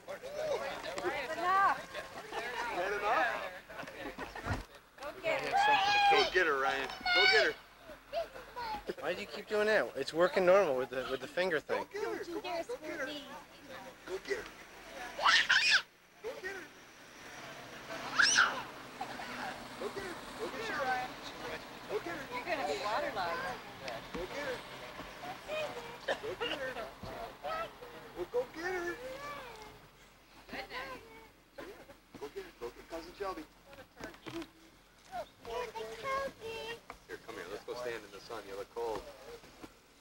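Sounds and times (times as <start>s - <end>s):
toddler squealing: 15.2s - 15.9s, 18.1s - 18.7s.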